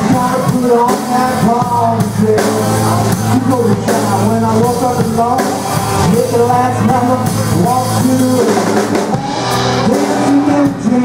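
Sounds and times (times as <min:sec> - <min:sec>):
drum kit: 0:00.0 - 0:11.0
guitar: 0:00.0 - 0:11.0
live rock band playing: 0:00.0 - 0:11.0.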